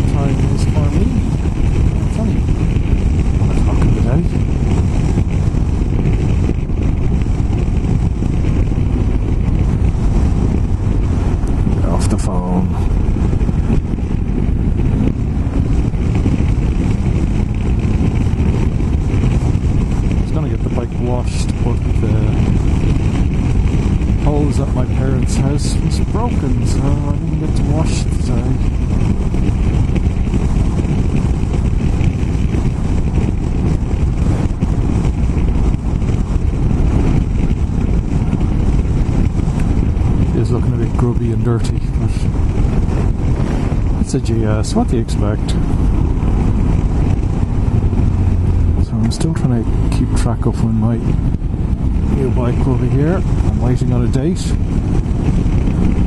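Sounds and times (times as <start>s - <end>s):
motorcycle engine cruising: 0.0s - 56.0s
wind noise on microphone: 0.0s - 56.0s.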